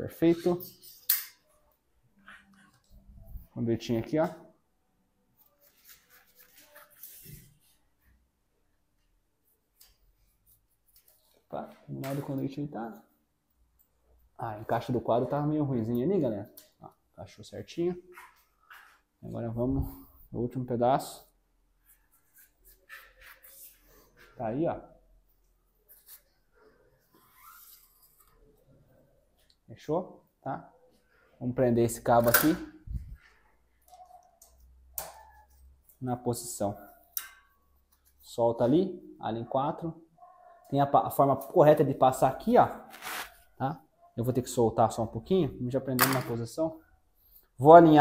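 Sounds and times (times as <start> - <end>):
cable scratching and rustling: 42.7 - 43.6.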